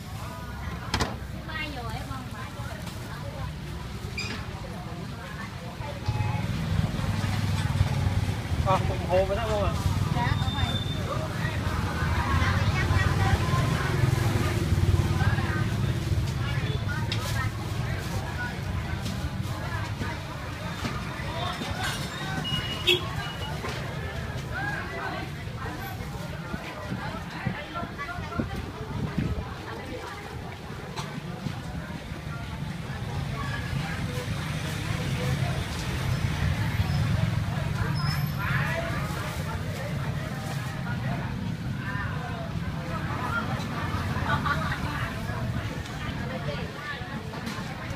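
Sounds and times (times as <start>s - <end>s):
low rumble of traffic: 0.0s - 47.9s
people talking: 0.0s - 47.9s.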